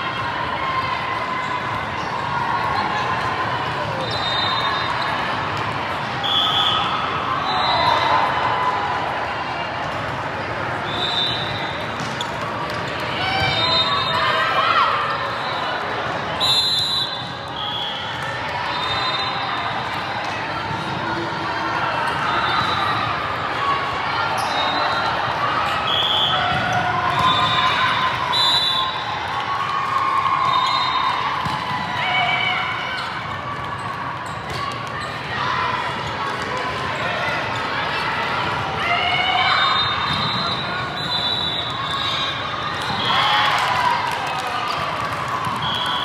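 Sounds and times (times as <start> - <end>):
overlapping voices in echoing hall: 0.0 - 46.0.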